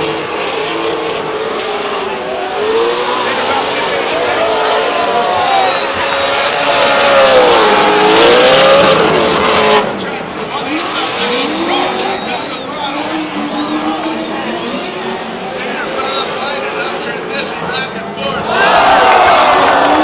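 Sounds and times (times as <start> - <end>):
car engines revving: 0.0 - 20.0.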